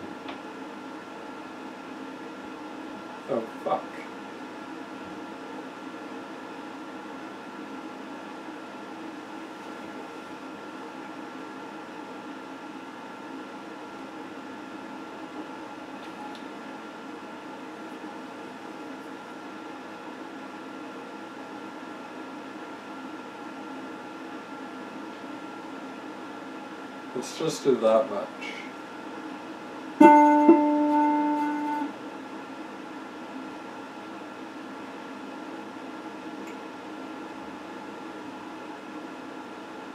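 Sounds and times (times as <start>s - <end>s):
guitar amp electrical hum and hiss: 0.0s - 39.9s.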